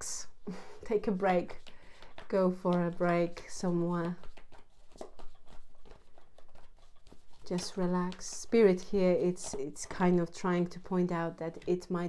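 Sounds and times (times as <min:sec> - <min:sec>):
cards shuffled by hand: 0:00.5 - 0:12.0.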